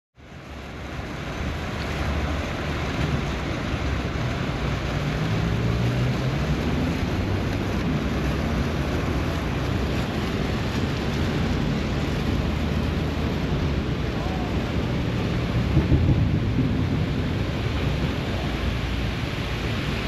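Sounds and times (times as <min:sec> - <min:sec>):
fountain splashing into pool: 0:00.2 - 0:20.0
low rumble: 0:00.2 - 0:20.0.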